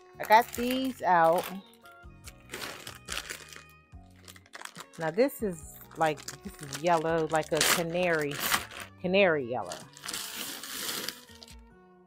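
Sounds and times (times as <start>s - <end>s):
soft background music: 0.0s - 12.0s
plastic bag crinkling: 0.1s - 9.0s, 9.6s - 11.6s.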